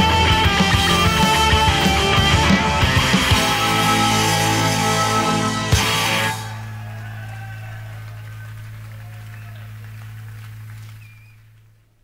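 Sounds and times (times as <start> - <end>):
rock band final hit: 0.0 - 6.8.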